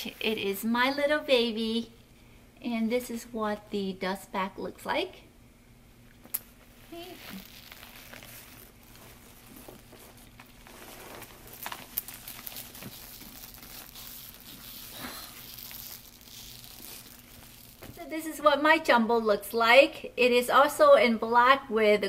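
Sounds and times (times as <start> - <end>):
cloth and tissue paper rustling: 0.0 - 1.2, 6.5 - 18.4.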